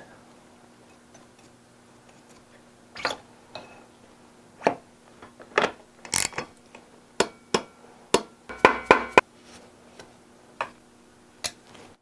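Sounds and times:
metal clicks and knocks: 5.6s - 6.5s.

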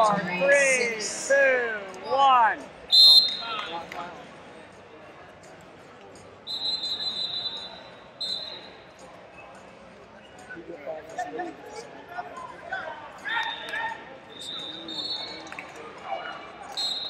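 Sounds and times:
low murmur of a large hall: 0.0s - 17.0s
referee's whistle blasts: 2.9s - 3.8s, 6.5s - 8.8s, 13.4s - 15.5s, 16.7s - 17.0s.

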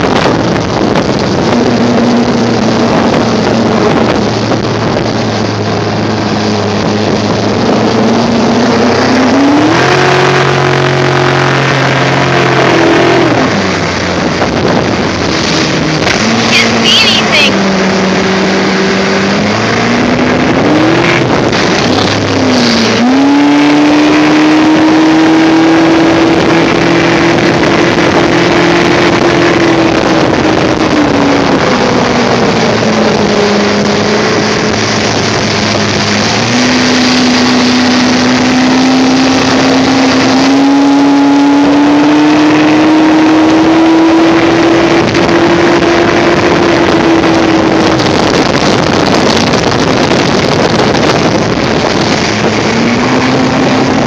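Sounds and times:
outboard motor running: 0.0s - 54.0s
wake water rushing: 0.0s - 54.0s
wind: 0.0s - 54.0s.

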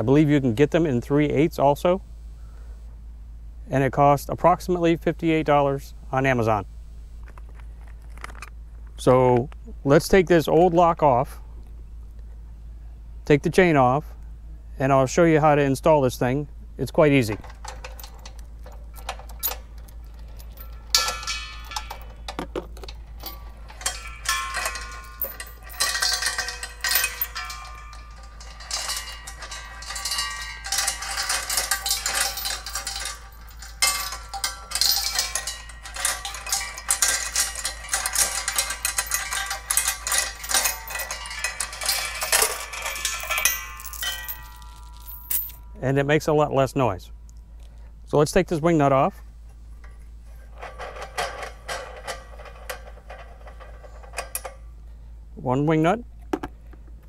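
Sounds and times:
chain links ringing against tanks: 17.0s - 46.3s, 49.8s - 55.0s
metal chain rattling and clinking: 17.1s - 45.8s, 49.8s - 54.8s.

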